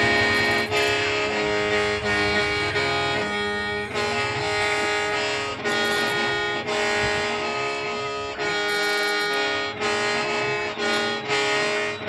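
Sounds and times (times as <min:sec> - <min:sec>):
mouth organ chords over drone: 0:00.0 - 0:12.0.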